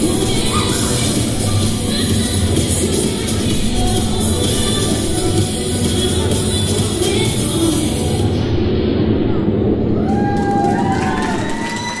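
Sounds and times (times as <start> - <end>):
dance music: 0.0 - 12.0
high-pitched screams: 0.2 - 1.4, 9.9 - 12.0
crowd cheering: 9.7 - 12.0.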